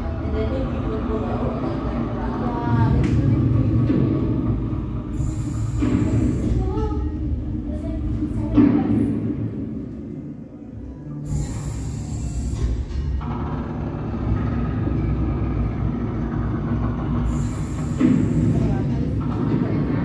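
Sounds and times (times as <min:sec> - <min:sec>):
music: 0:00.0 - 0:20.0
train rumbling: 0:00.0 - 0:20.0.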